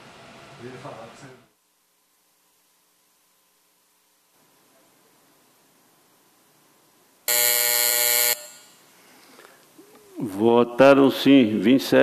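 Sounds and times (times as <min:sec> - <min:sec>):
harsh electronic buzzer: 0:07.3 - 0:08.8.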